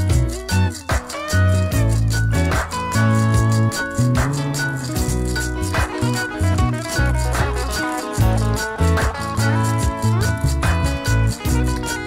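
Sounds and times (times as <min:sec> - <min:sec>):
electric guitar: 0:00.0 - 0:12.0
low held bass notes: 0:00.0 - 0:12.0
quick even rattling rhythm: 0:00.0 - 0:12.0.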